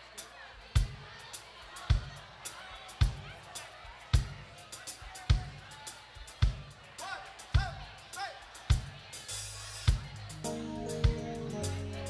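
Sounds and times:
audience chatter: 0.0s - 12.0s.

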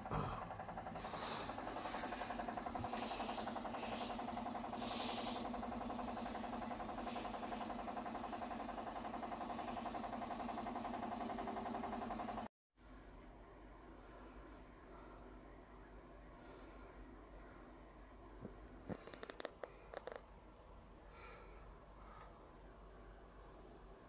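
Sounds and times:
machine hum with flutter: 0.0s - 24.0s.

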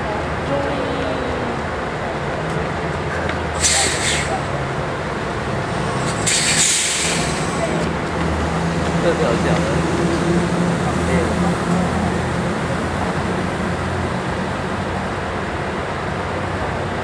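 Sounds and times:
diesel bus engines idling: 0.0s - 17.0s
air brake hiss: 3.6s - 4.5s, 6.0s - 7.8s.

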